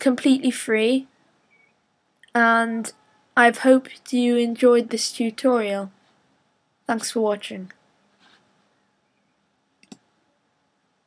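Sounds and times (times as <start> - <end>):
computer mouse button click: 9.8 - 10.0.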